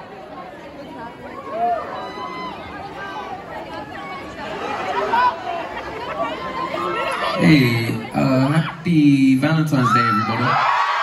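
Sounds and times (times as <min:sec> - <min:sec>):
people talking in a crowd: 0:00.0 - 0:11.0.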